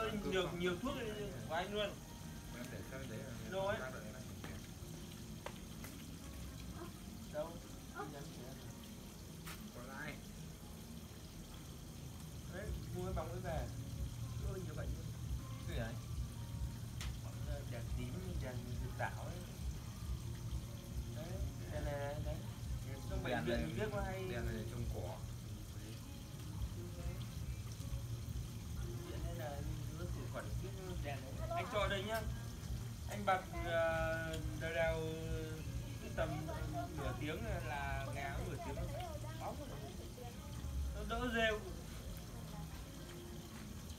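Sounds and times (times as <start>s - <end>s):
people conversing: 0.0s - 43.9s.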